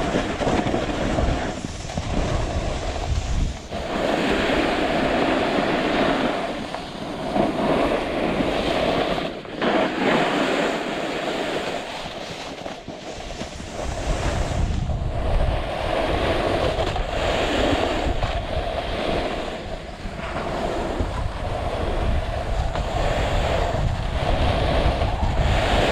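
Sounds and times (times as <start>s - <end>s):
snowboard scraping on snow: 0.0s - 25.9s
wind buffeting microphone: 0.0s - 25.9s.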